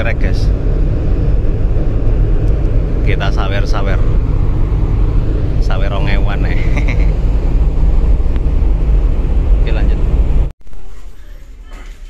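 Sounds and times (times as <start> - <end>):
wind buffeting microphone: 0.0 - 10.5
ship engine drone: 0.0 - 12.0.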